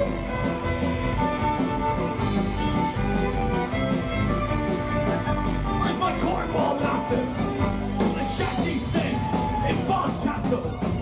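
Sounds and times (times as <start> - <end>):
fiddle melody: 0.0 - 8.8
drums: 0.0 - 11.0
strummed guitars: 0.0 - 11.0.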